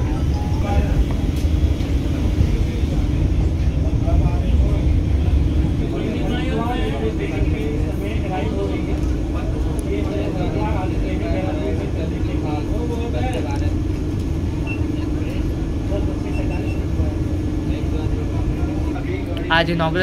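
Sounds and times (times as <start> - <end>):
people talking indistinctly: 0.0 - 20.0
train coach rumble and hum: 0.0 - 20.0.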